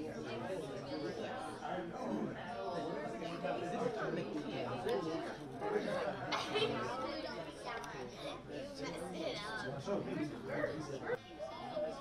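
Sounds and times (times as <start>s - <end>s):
adults and children chattering: 0.0s - 12.0s.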